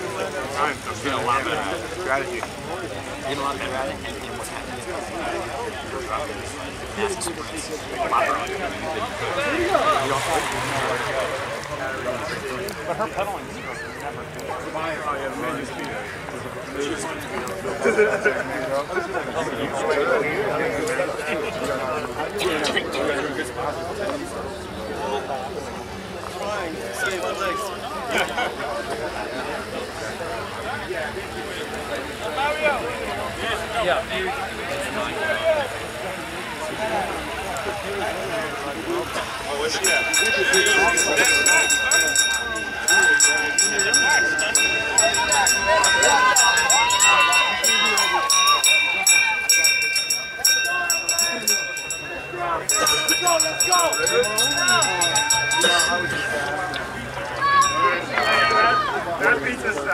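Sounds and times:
people talking at once: 0:00.0 - 0:59.9
steady high-pitched tone: 0:39.7 - 0:58.5.

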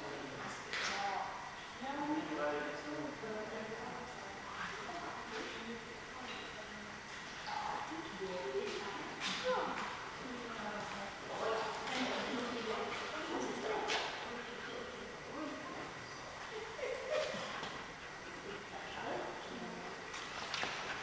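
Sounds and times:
people talking: 0:00.0 - 0:17.6, 0:18.2 - 0:20.0.

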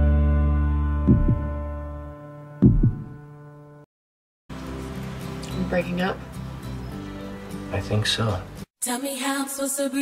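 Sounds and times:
heartbeat double thuds: 0:01.0 - 0:01.6, 0:02.6 - 0:03.2.

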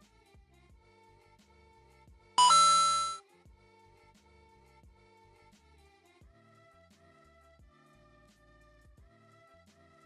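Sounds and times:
two-note chime: 0:02.4 - 0:03.2.

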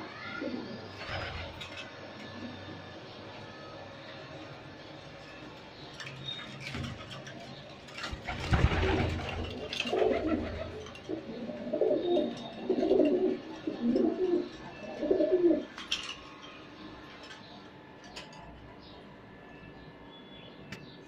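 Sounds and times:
pigeons cooing: 0:00.2 - 0:03.0, 0:06.6 - 0:15.8.

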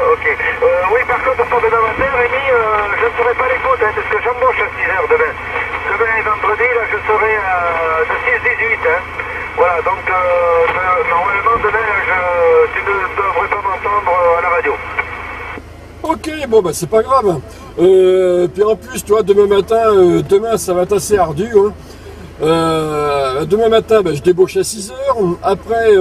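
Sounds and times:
low hum: 0:00.0 - 0:26.0
radio speech: 0:00.0 - 0:26.0.

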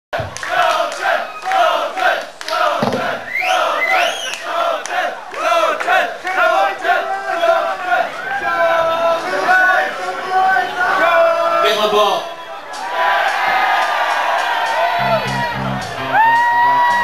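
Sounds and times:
audience shouting and chanting: 0:00.2 - 0:17.0
high whoops: 0:14.0 - 0:17.0.

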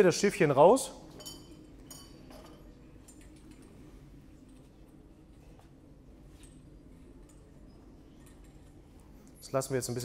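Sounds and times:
low room hum: 0:00.0 - 0:10.0
lab equipment clicks and clinks: 0:01.0 - 0:10.0.

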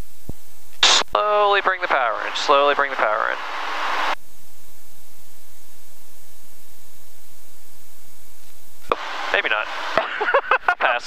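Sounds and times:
faint steady engine tones: 0:08.6 - 0:11.0
airplane cabin hiss: 0:08.8 - 0:11.0.

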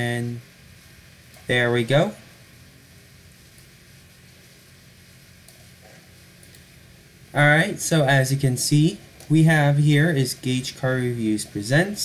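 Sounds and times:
faint microphone hiss and hum: 0:00.0 - 0:12.0.

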